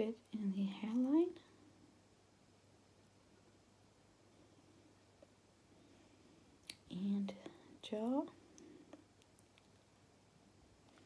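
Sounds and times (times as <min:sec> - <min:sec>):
woman speaking softly: 0:00.0 - 0:01.5, 0:06.8 - 0:08.4.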